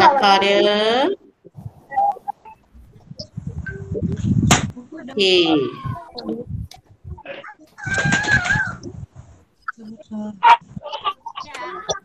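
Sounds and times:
rooster crowing: 0:07.8 - 0:08.8.

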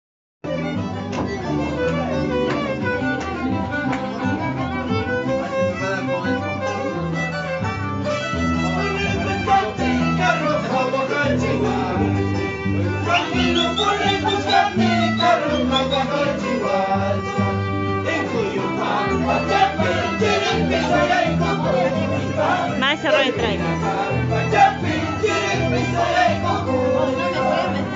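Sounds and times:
live band playing folk tune: 0:00.4 - 0:27.9
low bass notes: 0:00.5 - 0:27.9
violin melody: 0:00.5 - 0:27.9.

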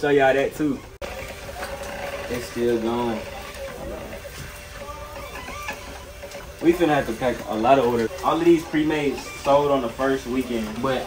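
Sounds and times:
label printer running: 0:01.0 - 0:11.0.

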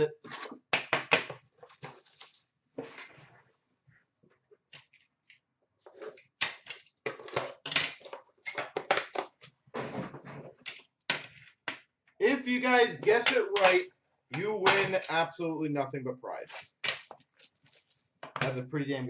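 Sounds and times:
packaging rustling: 0:01.4 - 0:02.5, 0:17.0 - 0:18.1.

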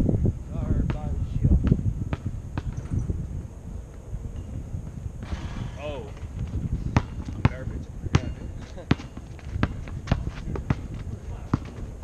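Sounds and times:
basketball bouncing on pavement: 0:00.8 - 0:03.0, 0:06.1 - 0:12.0.

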